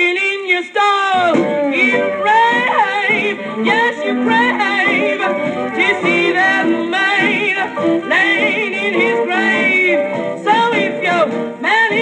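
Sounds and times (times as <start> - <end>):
blues song on old record: 0.0 - 12.0
record hiss: 0.0 - 12.0.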